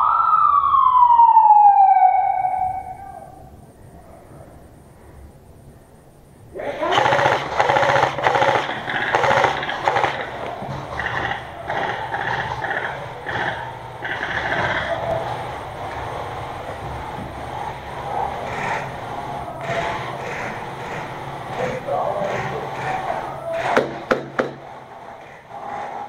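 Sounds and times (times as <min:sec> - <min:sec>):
airsoft rifle full-auto bursts: 0:06.6 - 0:16.4.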